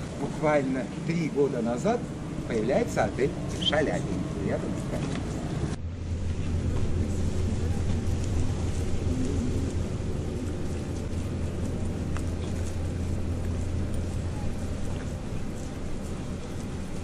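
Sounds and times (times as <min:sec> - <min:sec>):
faint outdoor background noise: 0:00.0 - 0:17.0
ship engine hum: 0:00.0 - 0:17.0.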